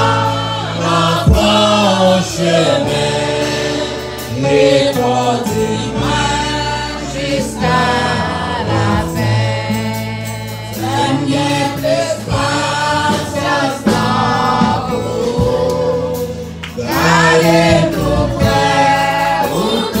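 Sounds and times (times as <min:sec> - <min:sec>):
group singing a hymn: 0:00.0 - 0:20.0.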